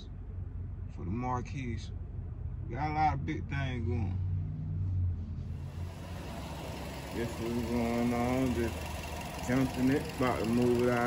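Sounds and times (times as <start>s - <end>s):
car engine rumble in cabin: 0.0s - 11.0s.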